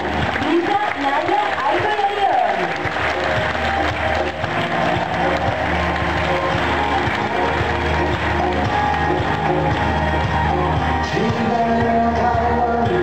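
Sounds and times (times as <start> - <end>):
audience applauding: 0.0 - 13.0
loud background music: 0.0 - 13.0.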